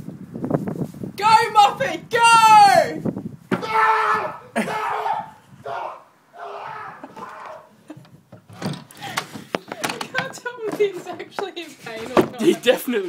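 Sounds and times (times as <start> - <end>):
man yelling and crying out: 1.2 - 7.7.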